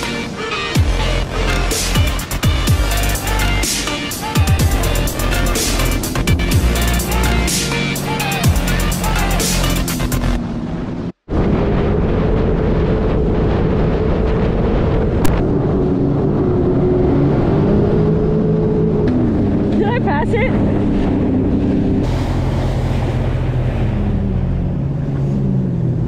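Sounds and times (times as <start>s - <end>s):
electronic dance music: 0.0s - 10.3s
jet ski engine running: 0.0s - 26.0s
wind and water noise: 9.9s - 26.0s.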